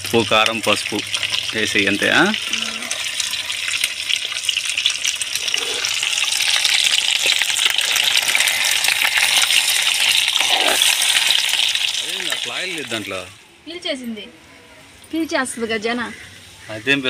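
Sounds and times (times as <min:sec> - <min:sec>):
fish sizzling in hot oil: 0:00.0 - 0:13.4.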